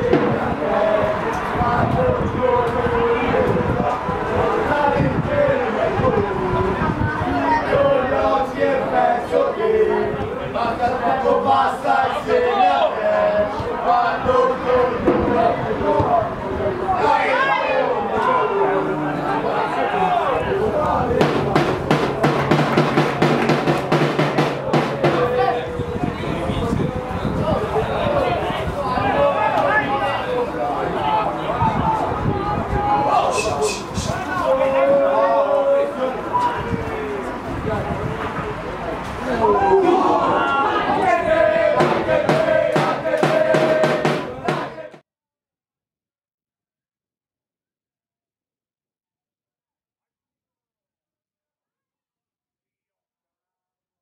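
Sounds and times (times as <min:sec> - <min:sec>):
drum beaten steadily: 0:21.2 - 0:25.6, 0:41.7 - 0:45.0.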